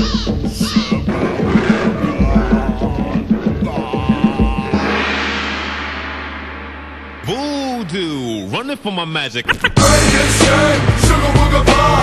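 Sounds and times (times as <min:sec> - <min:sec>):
ringing crash: 0:04.4 - 0:09.1.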